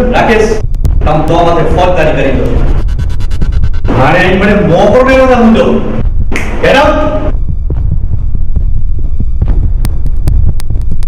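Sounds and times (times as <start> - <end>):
deep pulsing bass music: 0.0 - 11.0
sharp ticking clicks: 0.6 - 3.9, 7.3 - 11.0.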